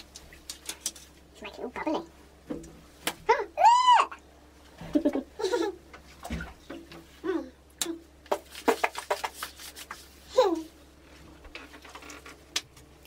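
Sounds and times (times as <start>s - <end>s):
young child high-pitched squealing: 3.3s - 4.2s.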